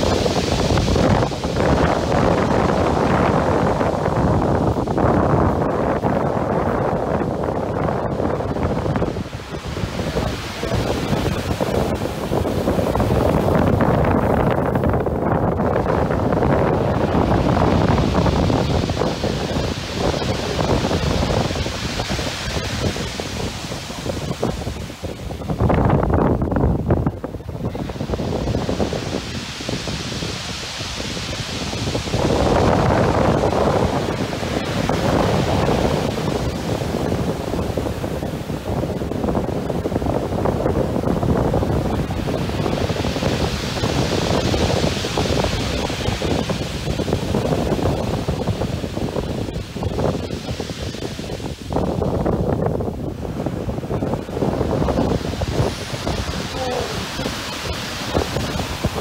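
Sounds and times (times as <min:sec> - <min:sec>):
surf breaking on beach: 0:00.0 - 0:59.0
wind buffeting microphone: 0:00.0 - 0:59.0.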